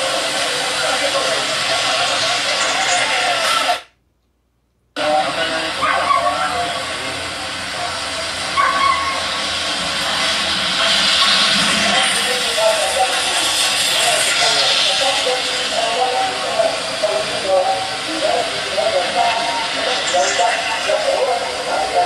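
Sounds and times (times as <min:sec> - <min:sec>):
hiss-like outdoor noise: 0:00.0 - 0:03.8, 0:05.0 - 0:22.0
indistinct voices: 0:00.0 - 0:03.9, 0:05.0 - 0:22.0.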